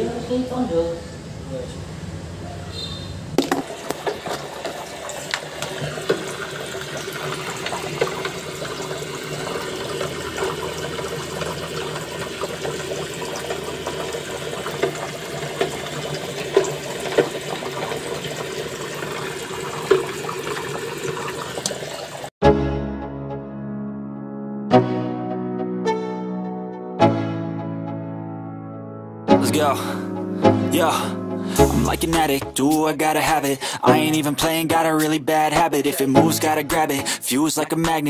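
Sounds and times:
water pouring into metal cabinet: 0:03.6 - 0:22.3.

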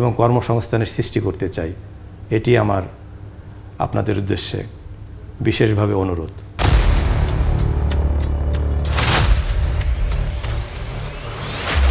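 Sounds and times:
light ticking percussion: 0:06.6 - 0:11.2
theme music: 0:06.6 - 0:11.9
rising sweep: 0:06.7 - 0:11.9.

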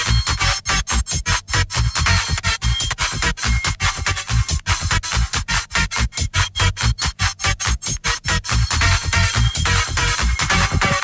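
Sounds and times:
hard techno: 0:00.0 - 0:11.0.

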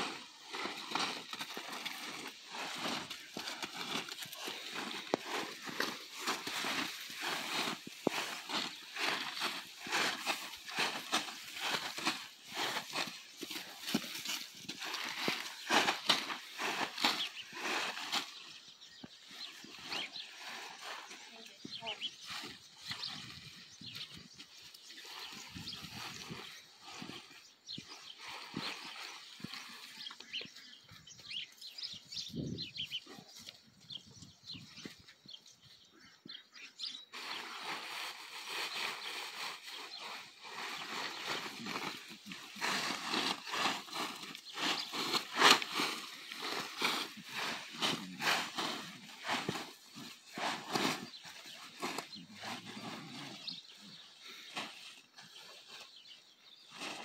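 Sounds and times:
plastic tarp rustling: 0:00.0 - 0:18.4, 0:37.1 - 0:53.4.

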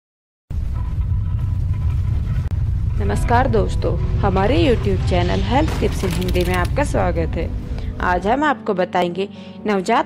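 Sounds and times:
deep low rumble: 0:00.5 - 0:08.4.

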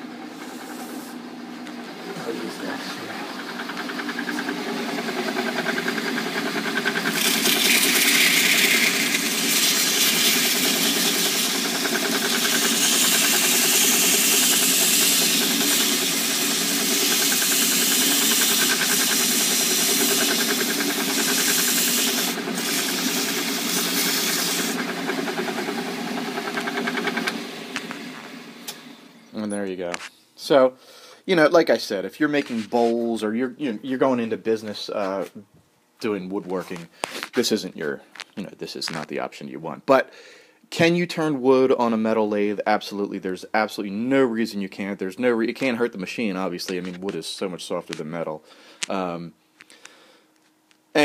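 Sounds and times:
lathe motor humming: 0:00.0 - 0:29.2
sandpaper hissing on spinning wood: 0:00.3 - 0:01.2, 0:02.2 - 0:27.3.

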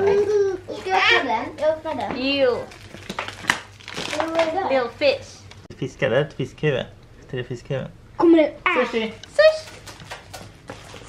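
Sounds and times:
wrapper crackling: 0:02.6 - 0:04.6
chocolate wrapper crinkling: 0:02.7 - 0:04.6.

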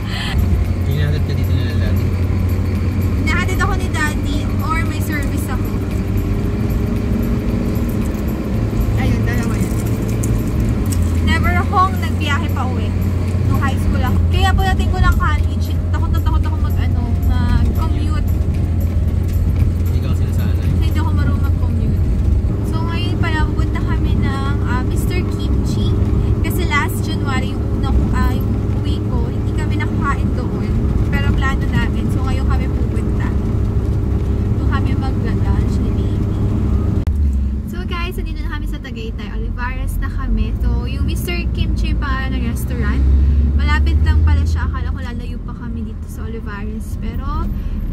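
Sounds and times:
people talking: 0:00.0 - 0:02.0, 0:03.2 - 0:06.0, 0:09.0 - 0:09.8, 0:11.2 - 0:18.4, 0:19.9 - 0:33.4, 0:34.6 - 0:36.3, 0:37.7 - 0:43.0, 0:43.6 - 0:47.5
car cabin road and engine rumble: 0:00.0 - 0:47.9.

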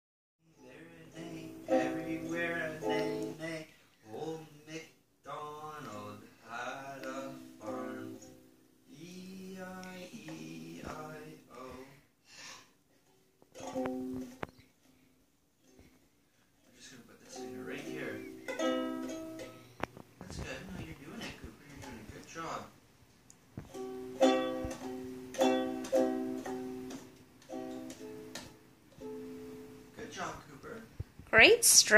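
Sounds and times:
person singing: 0:00.4 - 0:12.1
ukulele strumming: 0:00.7 - 0:03.6, 0:06.8 - 0:08.6, 0:13.5 - 0:14.6, 0:16.7 - 0:22.6, 0:23.6 - 0:30.3.

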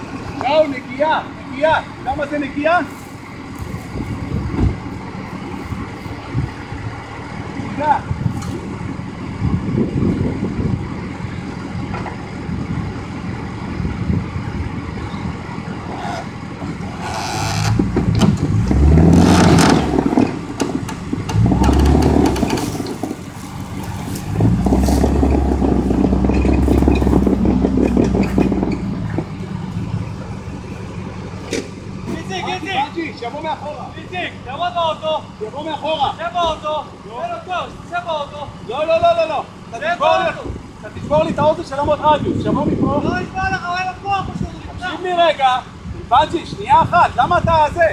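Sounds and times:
off-road vehicle engines revving: 0:00.0 - 0:47.9.

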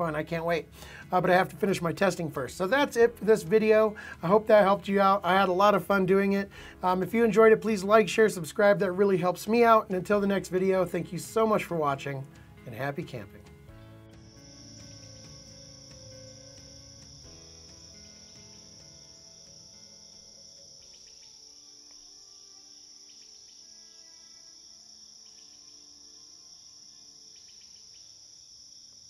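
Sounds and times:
soft music: 0:00.0 - 0:28.0
crickets chirping: 0:14.1 - 0:29.0.

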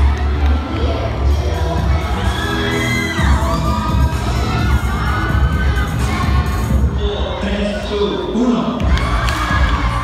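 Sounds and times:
dance music with bass beat: 0:00.0 - 0:07.3, 0:08.2 - 0:10.0
crowd shouting and cheering: 0:00.0 - 0:10.0
high screams: 0:02.2 - 0:03.9.

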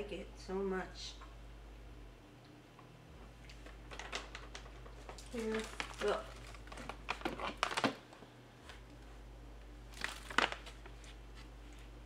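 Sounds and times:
low room hum: 0:00.0 - 0:12.0
plastic pouch crinkling: 0:03.5 - 0:08.2, 0:09.9 - 0:11.9.

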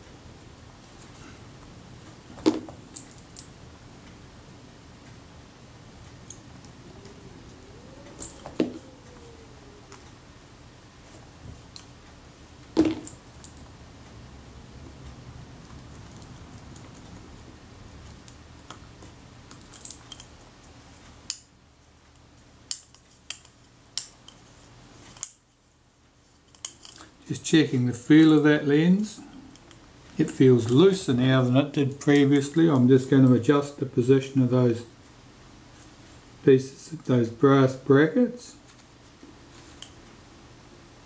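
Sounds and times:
faint background hum: 0:00.0 - 0:41.0.

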